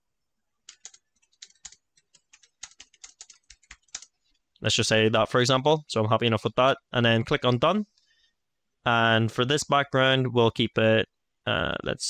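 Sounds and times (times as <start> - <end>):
typing on computer keyboard: 0.7 - 4.1.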